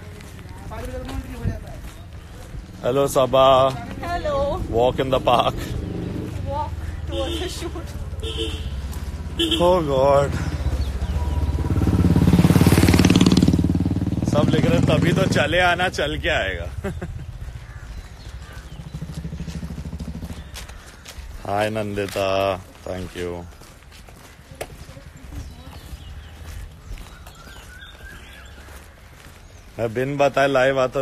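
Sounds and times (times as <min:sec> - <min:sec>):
footsteps walking: 0:00.0 - 0:11.6, 0:15.6 - 0:31.0
wind rumble on microphone: 0:00.5 - 0:02.8
vehicle engine passing by: 0:02.5 - 0:16.8, 0:18.3 - 0:21.8.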